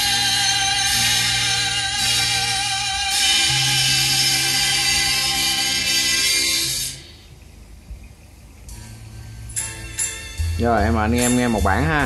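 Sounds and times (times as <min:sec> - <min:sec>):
music from tape deck: 0:00.0 - 0:12.0
tape hiss: 0:00.0 - 0:12.0.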